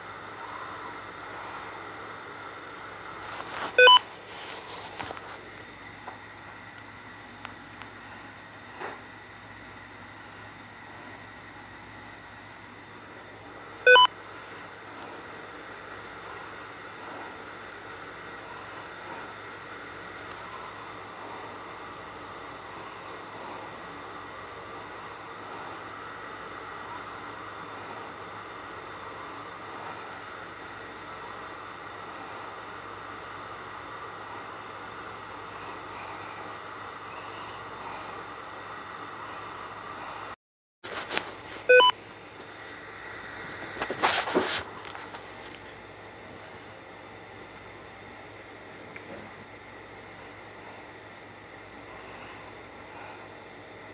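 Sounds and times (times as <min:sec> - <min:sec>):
radio static hiss: 0:00.0 - 0:07.0
short loud beep: 0:13.9 - 0:14.1, 0:41.7 - 0:41.9.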